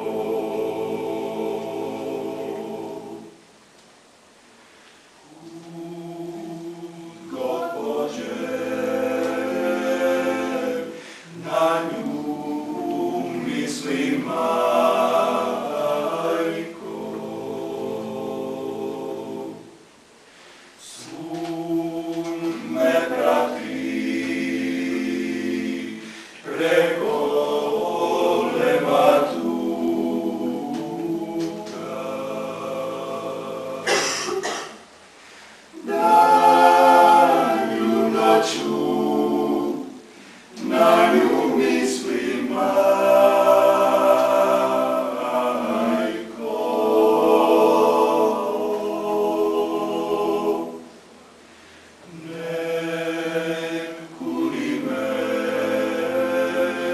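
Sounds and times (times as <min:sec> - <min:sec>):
male choir singing in harmony: 0:00.0 - 0:03.4, 0:05.2 - 0:19.8, 0:20.8 - 0:34.6, 0:35.7 - 0:51.0, 0:52.0 - 0:56.9.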